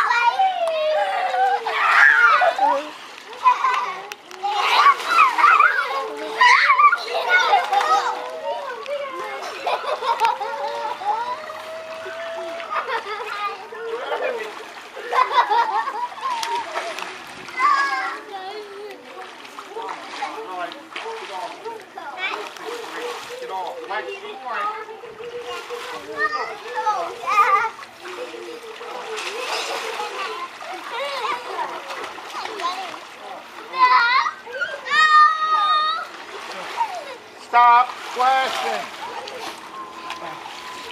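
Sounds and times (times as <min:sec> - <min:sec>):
children shouting: 0:00.0 - 0:20.2, 0:33.7 - 0:37.3
water splashing in pool: 0:00.0 - 0:40.9.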